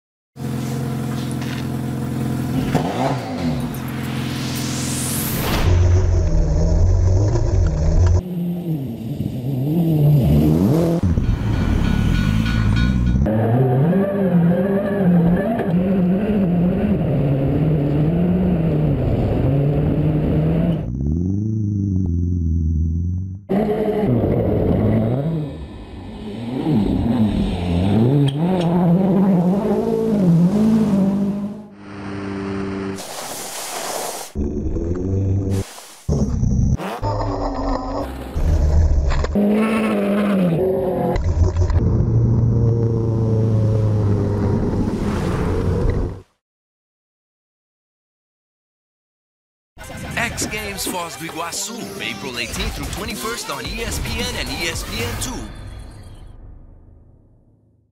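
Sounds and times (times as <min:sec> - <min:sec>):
rally car engine revving: 0:00.4 - 0:04.9, 0:05.9 - 0:33.0, 0:36.2 - 0:44.9.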